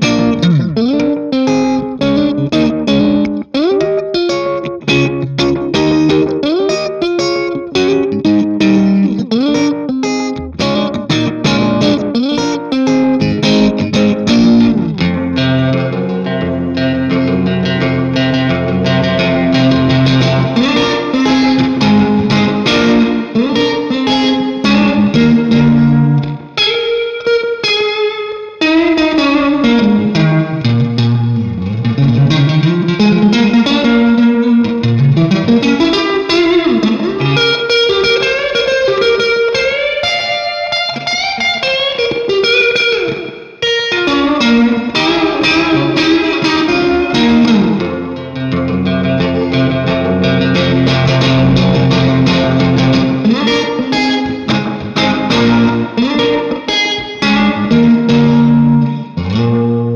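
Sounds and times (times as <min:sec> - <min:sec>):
electric guitar with reverb and tremolo: 0:00.0 - 0:59.9.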